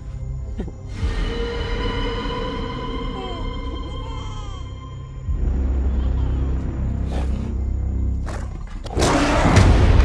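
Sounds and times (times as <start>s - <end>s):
deep trailer music drone: 0.2s - 10.0s.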